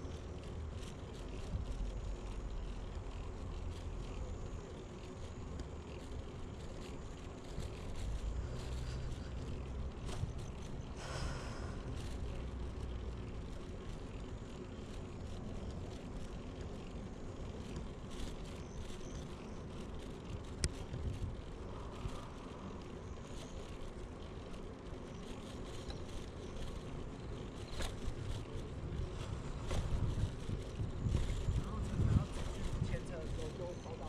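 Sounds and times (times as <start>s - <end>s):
bicycle rolling noise: 0.0s - 34.0s
small rattles: 0.0s - 34.0s.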